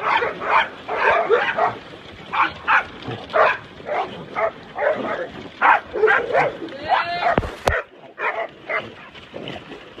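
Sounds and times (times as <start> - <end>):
dogs barking and yipping: 0.0 - 9.1.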